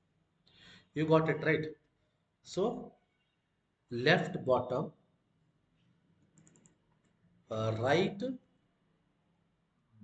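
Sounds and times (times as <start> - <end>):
faint computer clicks: 6.2 - 7.2.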